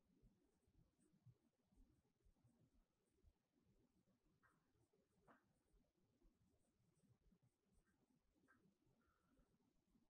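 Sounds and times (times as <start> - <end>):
marker pen writing on whiteboard: 4.0 - 9.6.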